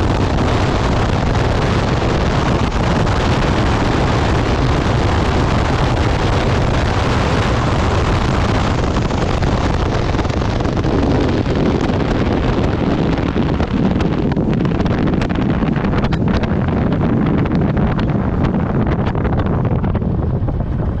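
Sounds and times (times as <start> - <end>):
motorcycle engine running: 0.0 - 21.0
wind noise on microphone: 0.0 - 21.0.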